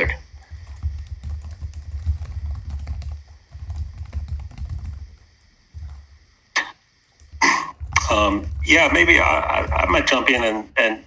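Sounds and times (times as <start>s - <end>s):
computer keyboard typing: 0.0s - 6.2s, 7.1s - 10.3s.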